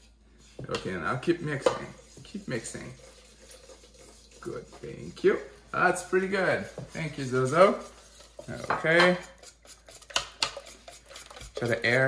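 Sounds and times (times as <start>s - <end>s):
whisk scraping ceramic bowl: 0.0s - 12.0s.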